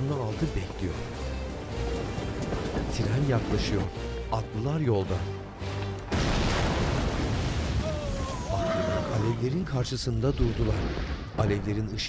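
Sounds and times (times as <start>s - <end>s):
explosion with rumbling roar: 6.1s - 9.2s.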